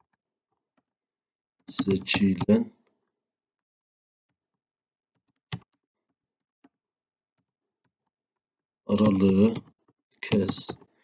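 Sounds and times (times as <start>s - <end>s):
keyboard typing: 8.9s - 9.7s.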